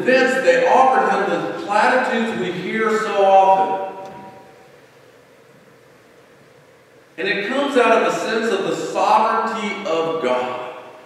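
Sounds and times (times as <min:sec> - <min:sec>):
man's voice echoing: 0:00.0 - 0:04.5, 0:07.2 - 0:11.0
faint room hiss: 0:00.0 - 0:11.0.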